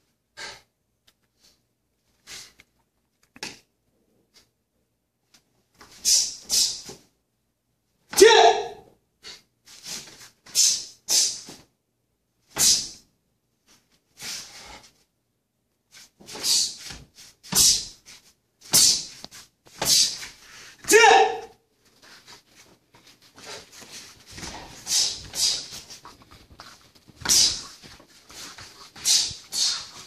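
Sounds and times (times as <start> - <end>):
person shouting: 8.1 - 8.9, 20.8 - 21.6
sharp swishing strikes: 24.5 - 26.0, 27.2 - 27.8, 28.5 - 30.0.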